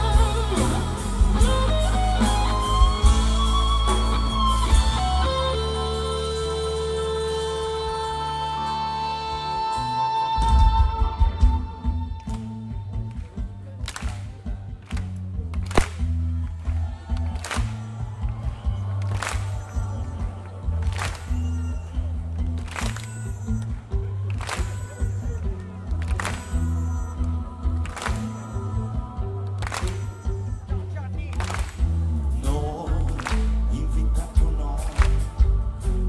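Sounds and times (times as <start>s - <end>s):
live rock band instrumental: 0.0s - 36.0s.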